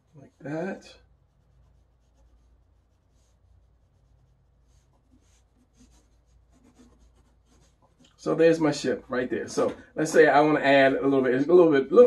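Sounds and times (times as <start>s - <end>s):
pencil sketching on paper: 0.0s - 8.6s.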